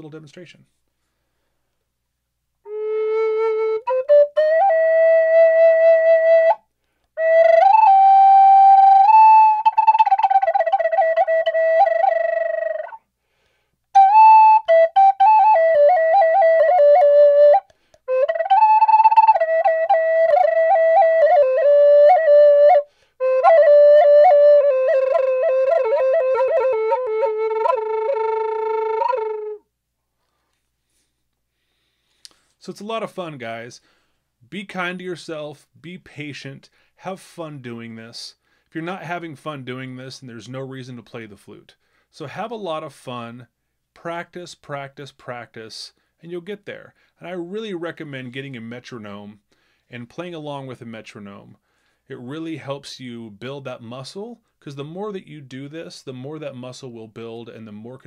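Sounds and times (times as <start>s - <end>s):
wooden flute slow melody: 2.6s - 13.0s, 13.9s - 29.7s.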